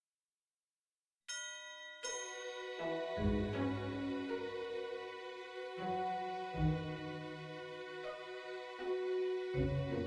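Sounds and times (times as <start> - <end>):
instrumental music: 2.1 - 10.0.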